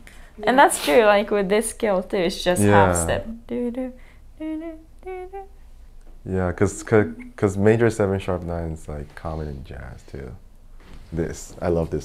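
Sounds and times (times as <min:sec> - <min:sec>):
person humming: 0:02.6 - 0:05.6, 0:06.8 - 0:07.4.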